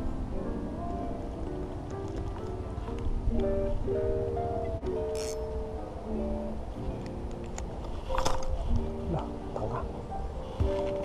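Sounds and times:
hip-hop instrumental music: 0:08.4 - 0:11.0.

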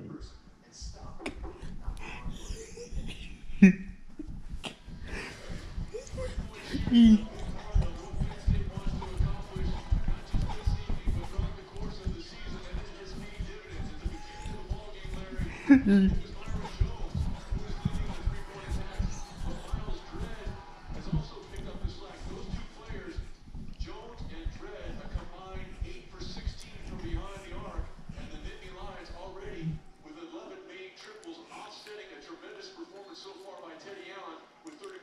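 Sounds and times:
sports commentary on television: 0:00.0 - 0:35.0
low thumping near microphone: 0:00.2 - 0:30.1
music under commentary: 0:04.9 - 0:30.5.

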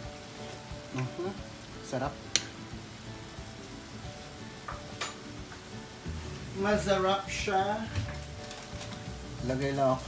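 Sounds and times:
sauce bubbling and sizzling: 0:00.0 - 0:10.0.

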